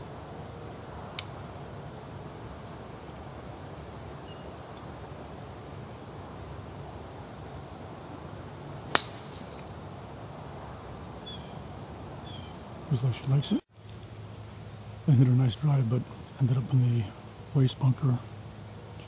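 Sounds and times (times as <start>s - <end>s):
outdoor background: 0.0s - 19.0s
golf driver striking ball: 8.9s - 9.7s.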